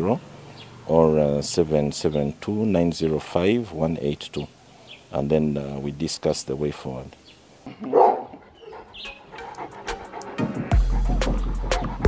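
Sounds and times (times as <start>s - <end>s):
dog barking: 7.8s - 10.2s
music with deep bass beat: 9.9s - 12.0s.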